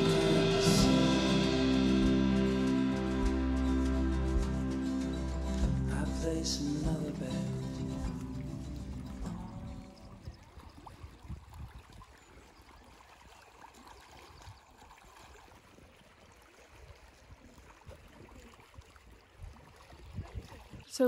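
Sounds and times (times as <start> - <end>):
background music: 0.0 - 10.0
water lapping against stones: 4.4 - 21.0.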